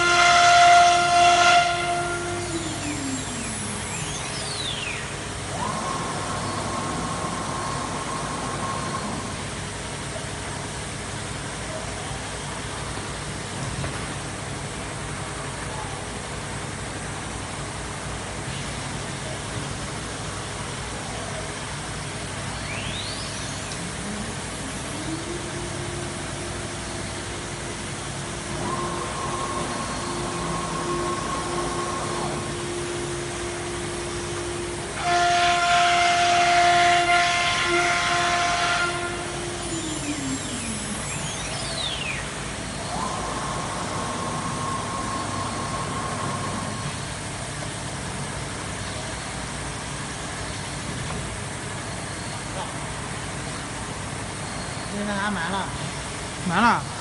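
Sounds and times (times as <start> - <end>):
machine tone: 0.0 - 10.0, 22.0 - 47.7
hissing burst with hum: 22.1 - 52.2.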